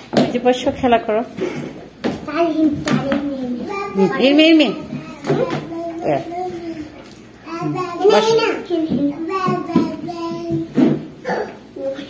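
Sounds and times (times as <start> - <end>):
child singing wordlessly: 2.3 - 11.0.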